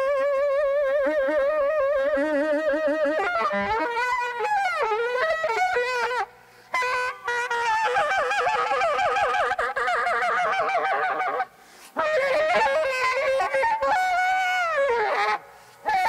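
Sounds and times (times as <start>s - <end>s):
saxophone honking and squawking: 3.1s - 16.0s.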